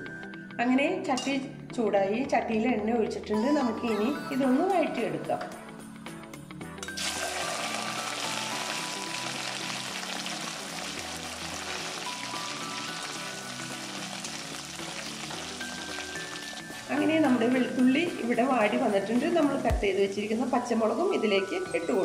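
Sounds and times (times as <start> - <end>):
deep-frying sizzle: 6.9 - 18.3.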